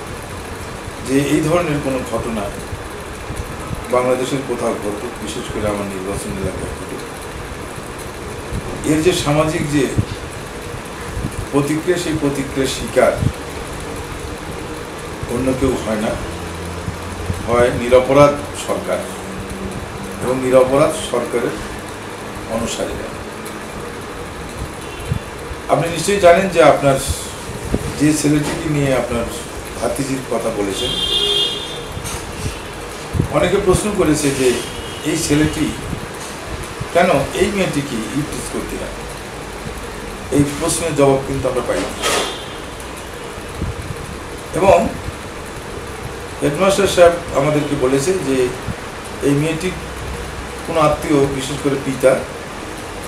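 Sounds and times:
background hum and hiss: 0:00.0 - 0:53.0
man speaking: 0:01.0 - 0:02.6, 0:03.9 - 0:07.1, 0:08.8 - 0:10.1, 0:11.5 - 0:13.3, 0:15.3 - 0:16.4, 0:17.4 - 0:19.3, 0:20.2 - 0:21.7, 0:22.5 - 0:23.3, 0:25.7 - 0:31.1, 0:33.3 - 0:35.9, 0:36.9 - 0:39.0, 0:40.3 - 0:42.0, 0:44.5 - 0:45.0, 0:46.4 - 0:48.6, 0:49.2 - 0:49.8, 0:50.7 - 0:52.3
short horn toot: 0:30.8 - 0:32.7, 0:42.0 - 0:42.6.

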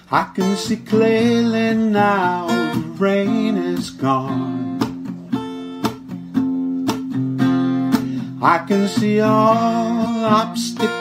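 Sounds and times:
person singing: 0:00.0 - 0:05.0, 0:08.2 - 0:11.0
strummed acoustic guitar: 0:00.0 - 0:11.0.

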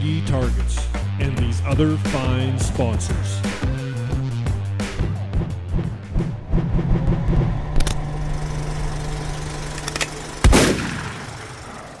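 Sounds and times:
steady low hum: 0:00.0 - 0:12.0
loud ringing boom: 0:10.4 - 0:12.0.

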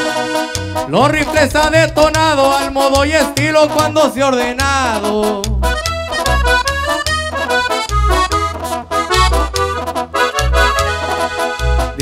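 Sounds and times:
accordion runs: 0:00.0 - 0:12.0
tuba and upright bass notes: 0:00.0 - 0:12.0.

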